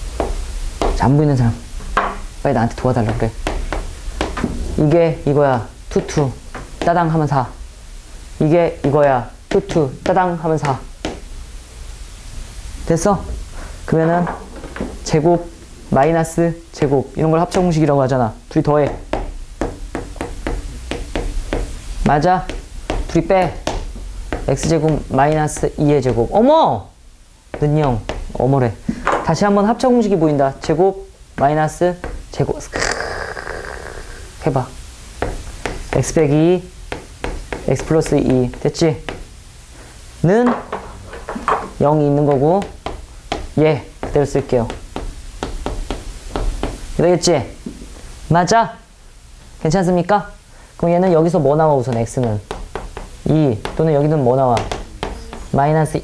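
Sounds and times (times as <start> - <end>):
chalk tapping on chalkboard: 0.2 - 1.2, 2.8 - 5.0, 5.9 - 7.2, 8.7 - 11.3, 16.8 - 17.8, 18.6 - 26.4, 27.5 - 28.4, 35.2 - 39.3, 40.7 - 46.9, 51.8 - 55.7.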